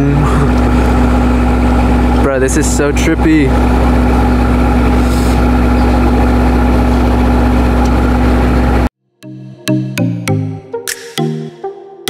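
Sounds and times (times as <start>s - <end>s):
boat engine idling: 0.0s - 8.9s
electronic music with beat: 9.2s - 12.0s.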